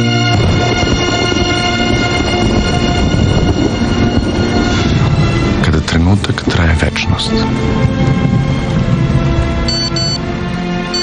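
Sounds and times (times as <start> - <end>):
background music with held chords: 0.0 - 11.0.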